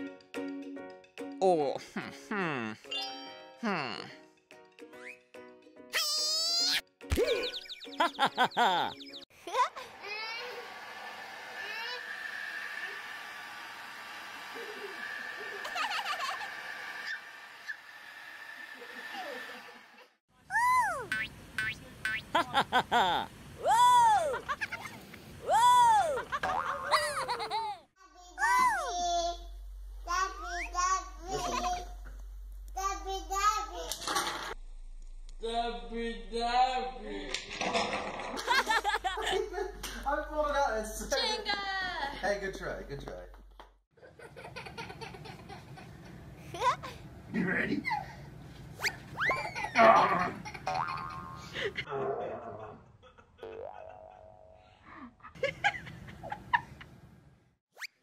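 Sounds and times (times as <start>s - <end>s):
hair dryer blowing: 9.8s - 20.0s
baby squealing and giggling: 20.5s - 21.2s, 23.6s - 27.4s, 48.8s - 51.5s.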